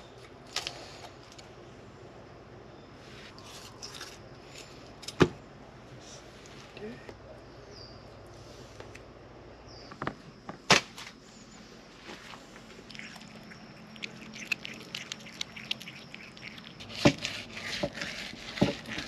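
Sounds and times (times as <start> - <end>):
cat chewing fish crunching: 12.7 - 19.0.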